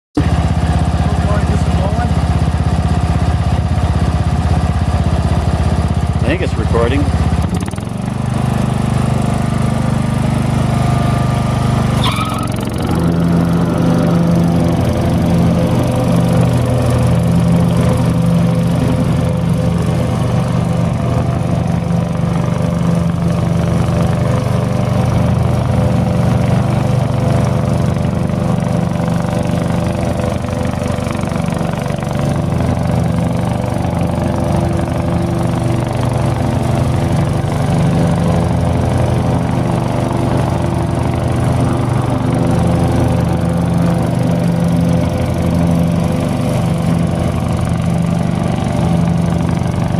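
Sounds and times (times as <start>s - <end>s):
riding lawn mower running: 0.2s - 49.9s.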